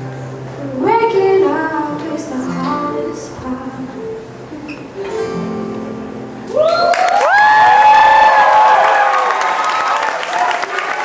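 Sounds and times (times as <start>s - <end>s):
ukulele: 0.0s - 7.5s
woman singing: 0.6s - 4.2s.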